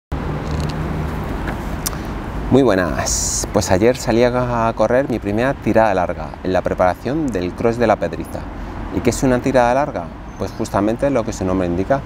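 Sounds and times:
city traffic rumble: 0.1s - 12.0s.

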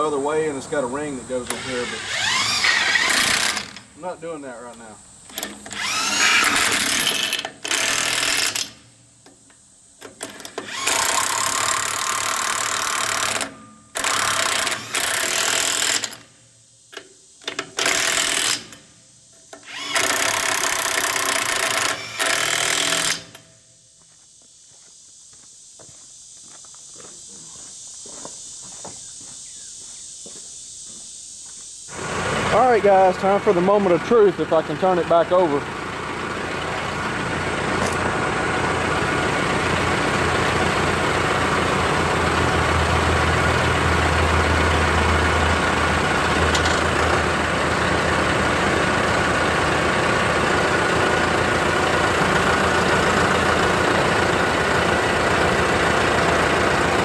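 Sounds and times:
impact wrench spinning lug nuts: 1.4s - 4.0s, 5.3s - 8.9s, 10.0s - 16.3s, 17.4s - 18.9s, 19.5s - 23.5s.

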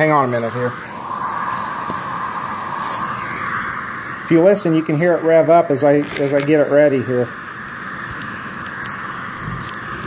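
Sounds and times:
vacuum cleaner airy whir: 0.0s - 10.0s.

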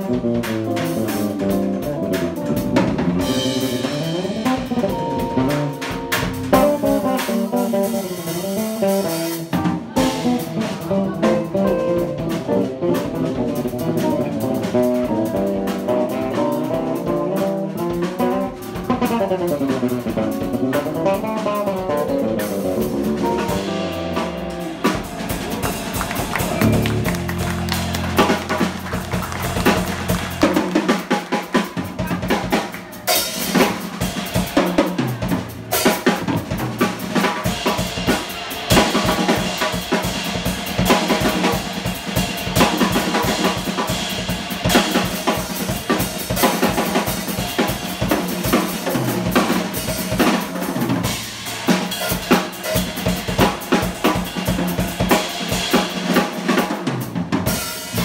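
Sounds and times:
held bass notes: 0.0s - 31.2s
busy drumming: 0.0s - 58.0s
electric guitar playing: 1.2s - 17.1s, 17.7s - 31.1s.

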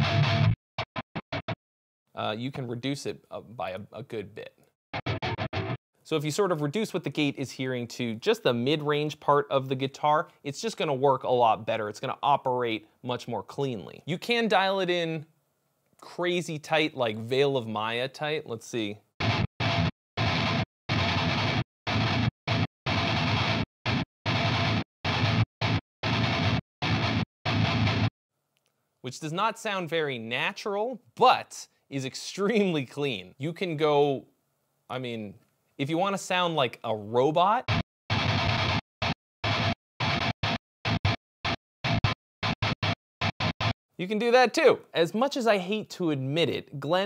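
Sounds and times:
electric guitar chugging metal riff: 0.0s - 0.6s, 4.9s - 5.8s, 19.2s - 28.1s, 37.7s - 43.8s.

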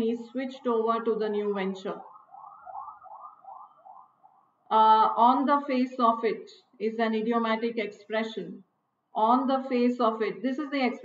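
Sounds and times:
warbling alarm tone: 1.4s - 4.6s.

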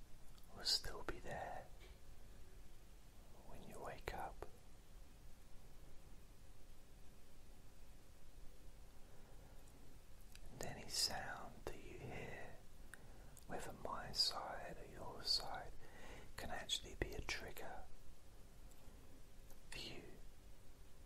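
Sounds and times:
person whispering: 0.4s - 1.9s, 3.3s - 4.6s, 10.4s - 12.6s, 13.4s - 17.9s, 19.7s - 20.3s.

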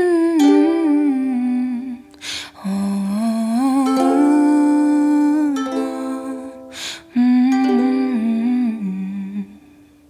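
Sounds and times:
ukulele notes ringing: 0.0s - 1.9s, 3.7s - 8.9s
woman humming: 0.0s - 9.7s.

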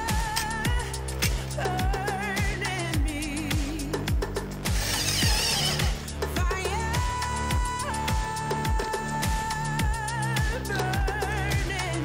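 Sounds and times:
music with steady beat: 0.0s - 12.0s
cordless drill driving screw: 4.7s - 6.1s.

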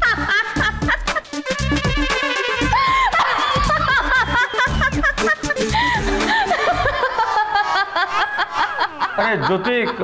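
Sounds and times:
background music with steady beat: 0.0s - 8.9s
woman laughing: 0.0s - 10.0s.

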